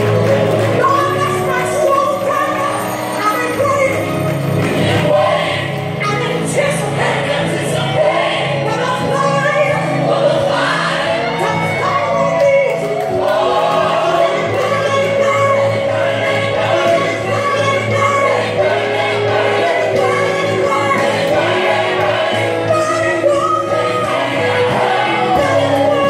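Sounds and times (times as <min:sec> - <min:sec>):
gospel choir with band: 0:00.0 - 0:26.0.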